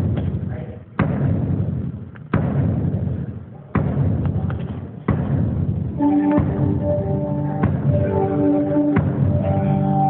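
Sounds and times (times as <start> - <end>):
bass drum thuds through sound system: 0.0 - 9.6.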